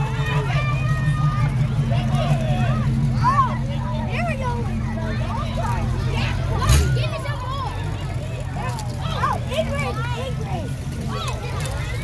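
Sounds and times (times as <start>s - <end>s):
children calling out: 0.0s - 12.0s
crowd talking: 0.0s - 12.0s
low vehicle engine hum: 0.0s - 12.0s.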